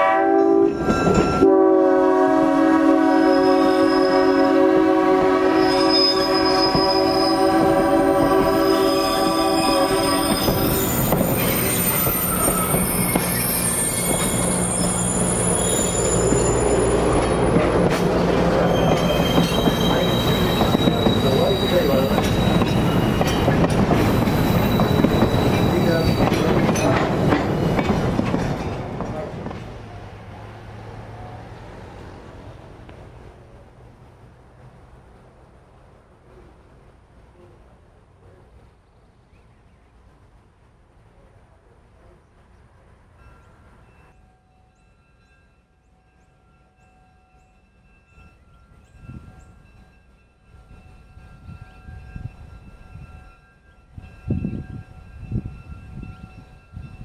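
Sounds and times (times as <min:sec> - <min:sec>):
train horn chord: 0:00.0 - 0:10.7
high wheel squeals: 0:05.6 - 0:23.5, 0:24.1 - 0:26.5
train wheels clacking over rails: 0:10.2 - 0:30.0.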